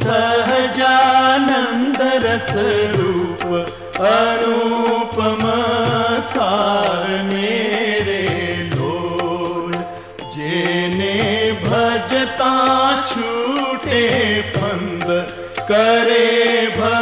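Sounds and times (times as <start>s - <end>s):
old song recording: 0.0s - 17.0s.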